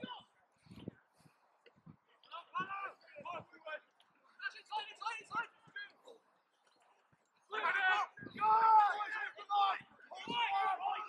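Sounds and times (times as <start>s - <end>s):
distant men shouting: 7.5s - 11.0s.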